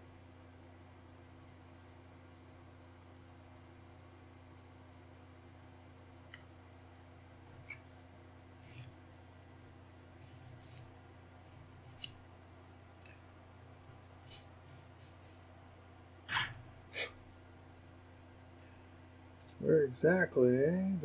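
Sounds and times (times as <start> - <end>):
low electrical hum: 0.0 - 21.0
dry scraping on plastic part: 7.6 - 8.0, 8.6 - 8.9, 10.2 - 10.9, 16.3 - 16.6.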